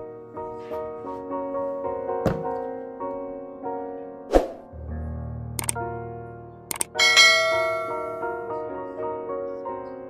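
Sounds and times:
soft piano music: 0.0s - 10.0s
mouse clicks: 6.7s - 7.0s
notification bell ding: 6.7s - 8.4s.

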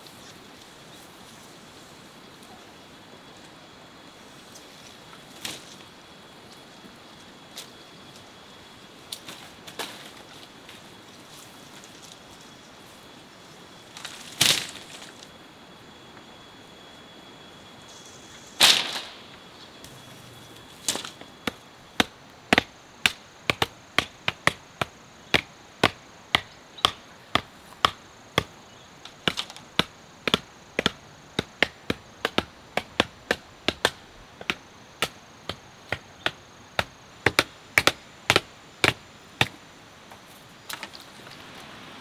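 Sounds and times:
tool striking bamboo and wood: 20.8s - 39.6s.

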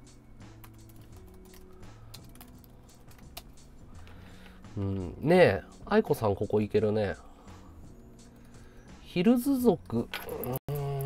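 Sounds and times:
soft background music: 0.0s - 11.0s
typing on computer keyboard: 0.6s - 3.5s.

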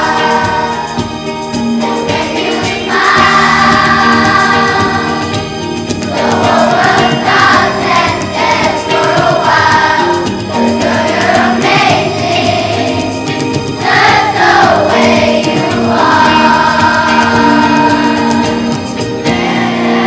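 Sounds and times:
children's choir singing: 0.0s - 20.0s
instrumental accompaniment: 0.0s - 20.0s.

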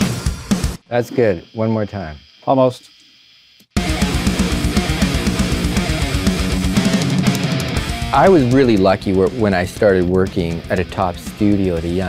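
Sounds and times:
distorted electric guitar riff: 3.8s - 12.0s.

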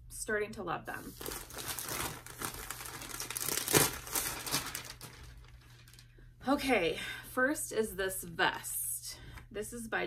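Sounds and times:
packaging crinkling and rustling: 1.1s - 6.1s.

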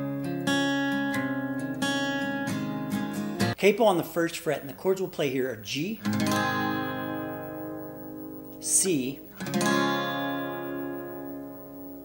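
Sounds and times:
acoustic guitar chord ringing: 0.0s - 3.6s, 5.7s - 12.0s.

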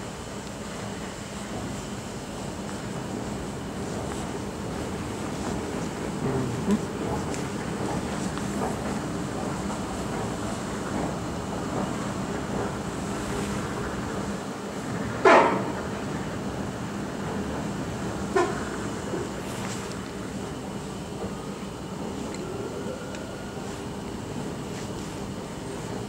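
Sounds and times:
machinery hum and rumble: 0.0s - 26.0s.

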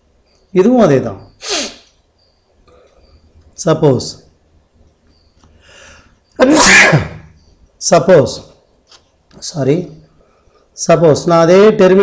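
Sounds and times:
man talking: 0.5s - 1.4s, 3.6s - 4.3s, 7.8s - 8.6s, 9.4s - 10.1s, 10.8s - 12.0s
man sneezing: 1.4s - 1.9s, 6.4s - 7.3s.

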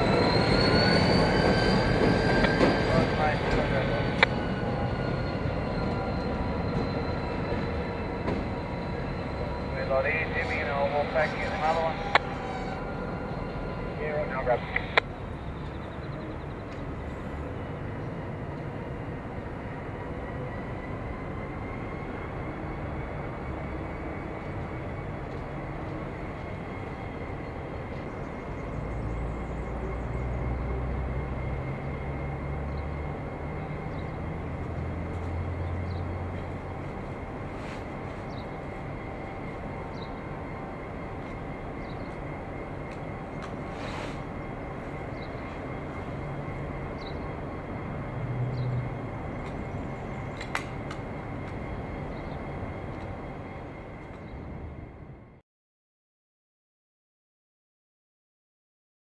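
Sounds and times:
diesel locomotive engine running: 0.0s - 55.4s
high engine whine: 0.0s - 55.4s.

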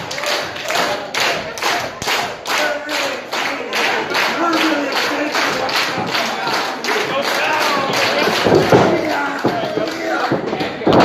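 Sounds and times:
crowd clapping in rhythm: 0.0s - 11.0s.

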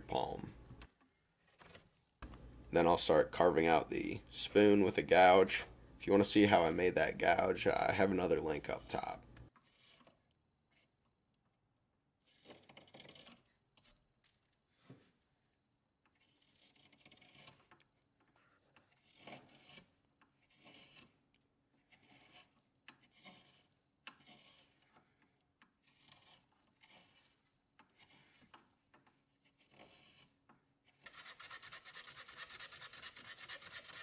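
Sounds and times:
gouge scraping wood: 6.6s - 11.2s, 12.2s - 15.2s, 16.0s - 34.0s
hand sanding wood: 18.9s - 21.2s, 21.8s - 25.0s, 28.0s - 34.0s.

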